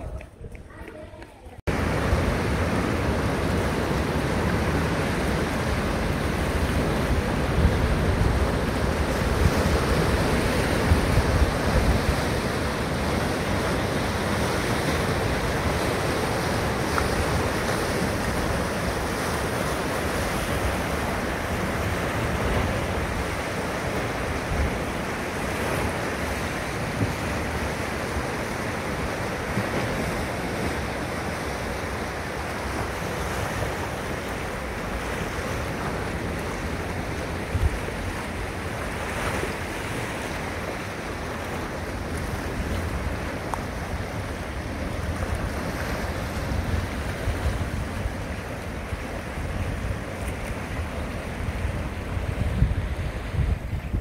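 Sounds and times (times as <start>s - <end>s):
wind buffeting microphone: 0.0s - 54.0s
surf breaking over rocks: 1.7s - 54.0s.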